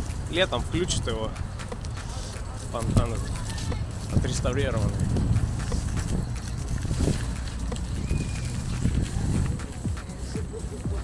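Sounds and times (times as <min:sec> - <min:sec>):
footsteps on paving stones: 0:00.0 - 0:11.0
wind rumble on microphone: 0:02.6 - 0:10.2.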